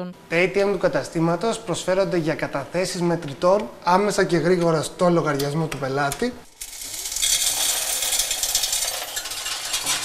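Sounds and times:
coins pouring into machine: 6.5 - 10.0.

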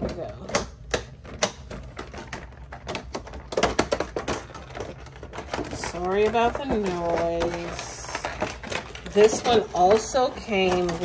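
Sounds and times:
plastic packaging clicking and crackling: 0.0 - 11.0.

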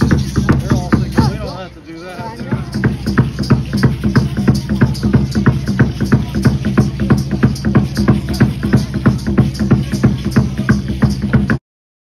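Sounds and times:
drum fast dance beat: 0.0 - 1.6, 2.2 - 11.6.

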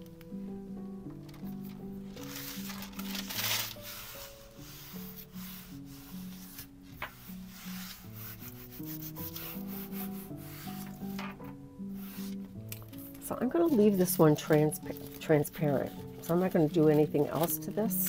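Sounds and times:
hands rubbing tissue paper: 2.2 - 18.0.

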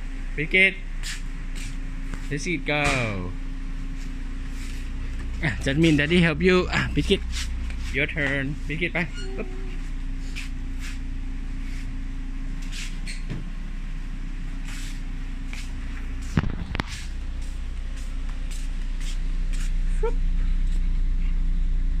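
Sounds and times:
car engine idling: 0.0 - 22.0.

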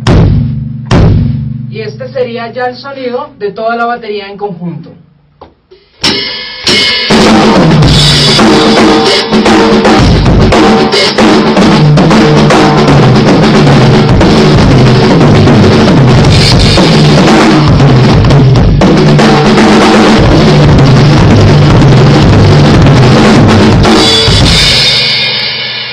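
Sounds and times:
drum kit groove: 0.0 - 3.0, 5.4 - 25.9.

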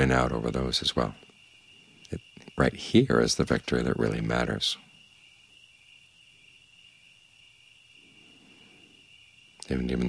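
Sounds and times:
crickets trilling: 0.0 - 10.0.

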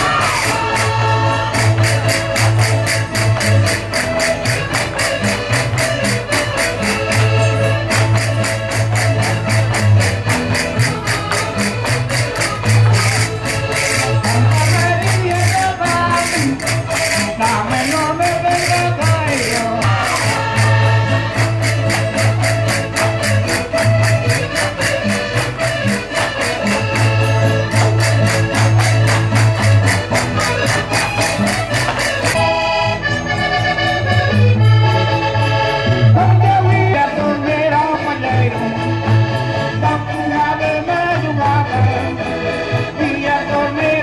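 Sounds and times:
accordion melody: 0.0 - 44.0
folk band playing dance tune: 0.0 - 44.0
jingling percussion: 0.0 - 44.0.

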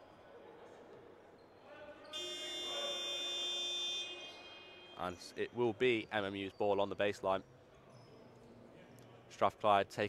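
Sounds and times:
scoreboard buzzer shrill tone: 2.1 - 5.0.

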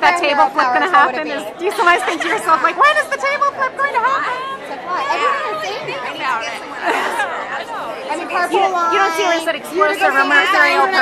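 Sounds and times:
background chatter: 0.0 - 11.0
women talking: 0.0 - 11.0.

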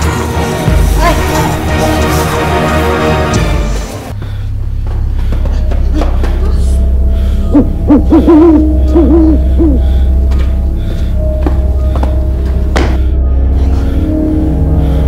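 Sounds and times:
background music: 0.0 - 15.0
low drone: 0.0 - 15.0.

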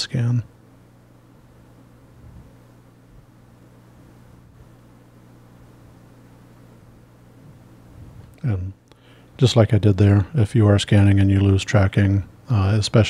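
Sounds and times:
faint low hum with hiss: 0.0 - 13.0.

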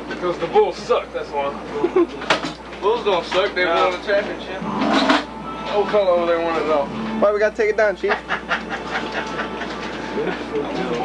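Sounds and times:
men talking indistinctly: 0.0 - 8.4, 10.1 - 11.0
steady mechanical noise: 0.0 - 11.0.

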